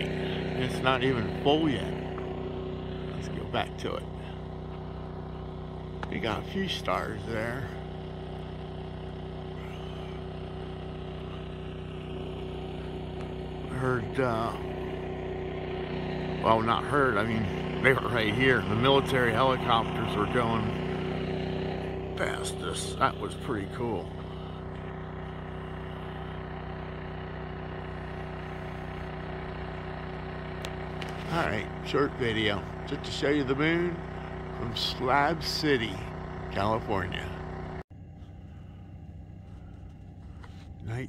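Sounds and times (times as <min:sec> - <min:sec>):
engine humming steadily: 0:00.0 - 0:41.0.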